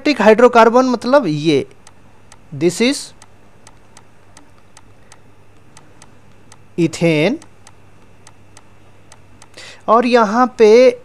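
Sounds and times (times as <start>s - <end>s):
low steady hum: 0.0s - 11.0s
faint light ticks: 3.2s - 6.7s, 7.4s - 9.6s.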